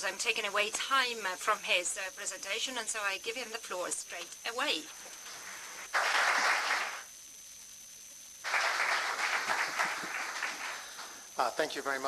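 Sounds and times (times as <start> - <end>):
audience applauding: 5.9 - 7.1, 8.4 - 11.2.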